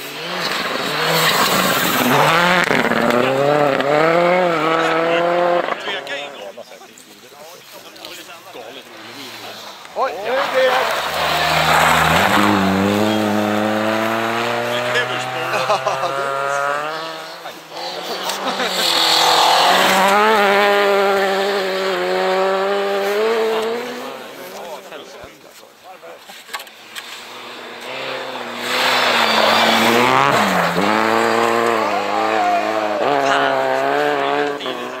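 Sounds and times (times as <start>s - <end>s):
engines revving through gears: 0.0s - 6.2s, 10.4s - 24.4s, 26.8s - 35.0s
rally cars driving past: 0.0s - 6.4s, 8.8s - 25.1s, 26.7s - 35.0s.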